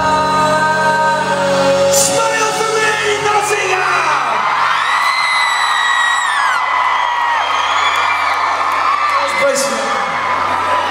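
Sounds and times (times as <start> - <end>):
concert audience cheering: 2.0 - 10.9
long high-pitched screams: 4.1 - 10.9.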